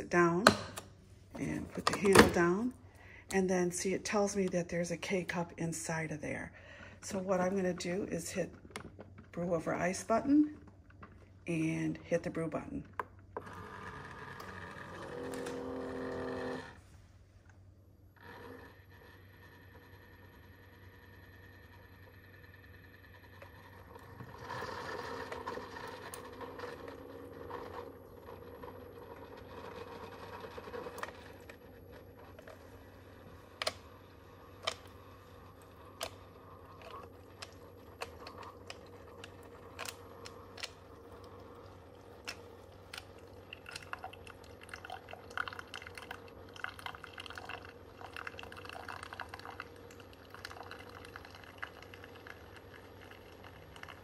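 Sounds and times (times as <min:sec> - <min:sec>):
pump humming: 0:13.4 - 0:16.8
coffee trickling into glass: 0:34.8 - 0:54.0.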